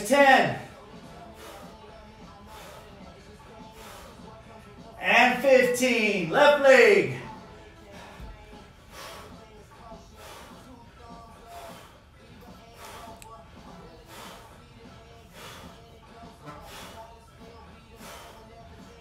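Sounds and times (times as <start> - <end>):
quiet background music: 0.0 - 19.0.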